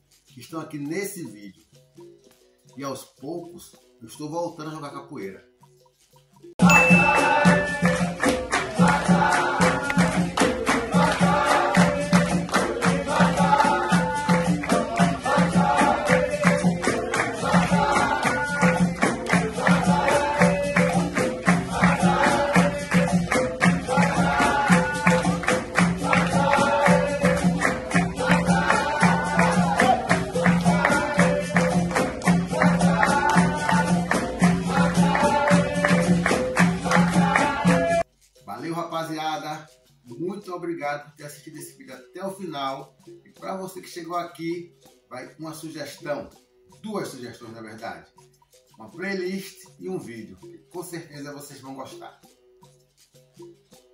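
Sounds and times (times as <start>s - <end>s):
jingling rattling percussion: 0.0s - 53.9s
berimbaus and drum rhythm: 5.7s - 53.9s
group singing: 6.7s - 38.1s.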